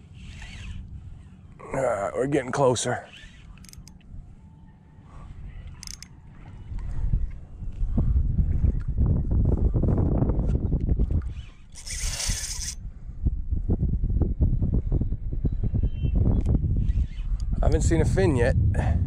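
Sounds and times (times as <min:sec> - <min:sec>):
wind buffeting microphone: 0:05.1 - 0:19.0.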